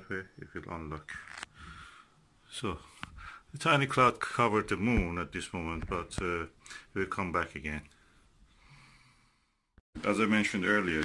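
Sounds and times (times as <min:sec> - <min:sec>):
faint soft breath: 0:01.2 - 0:02.2, 0:02.8 - 0:03.5, 0:07.9 - 0:09.7.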